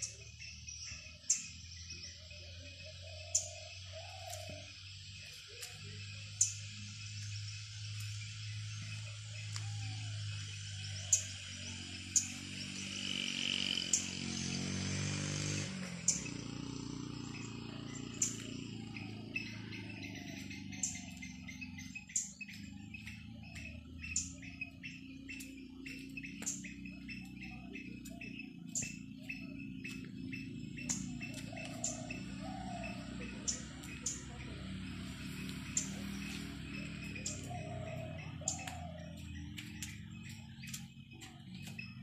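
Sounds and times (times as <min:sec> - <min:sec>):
bird chirps: 0:00.0 - 0:42.0
insects: 0:00.0 - 0:42.0.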